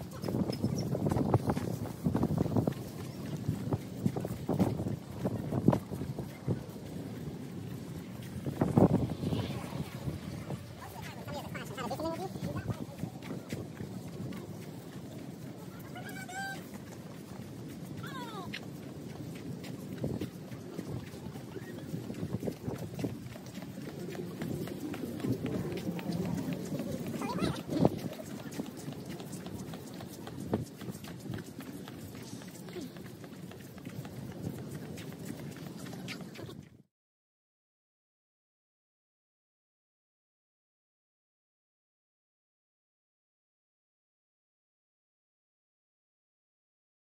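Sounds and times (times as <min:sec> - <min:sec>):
beachfront outdoor background noise: 0:00.0 - 0:36.9
footsteps on concrete: 0:00.0 - 0:36.9.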